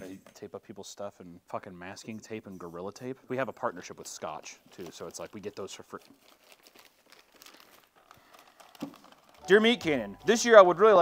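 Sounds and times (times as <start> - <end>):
wrapping paper crinkling: 4.0 - 11.0.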